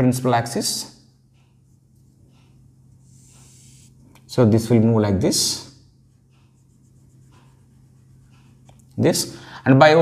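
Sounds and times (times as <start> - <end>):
marker pen on whiteboard: 0.0 - 9.4.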